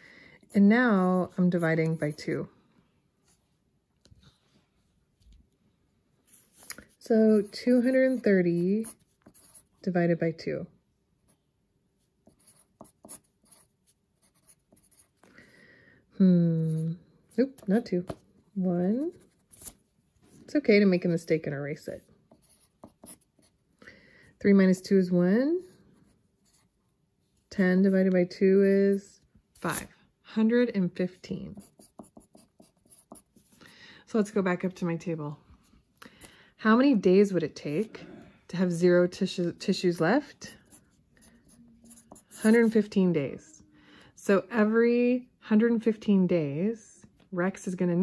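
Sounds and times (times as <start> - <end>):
pencil writing on paper: 6.3 - 9.7, 12.2 - 15.3, 22.3 - 23.6, 31.5 - 33.6, 40.5 - 42.9.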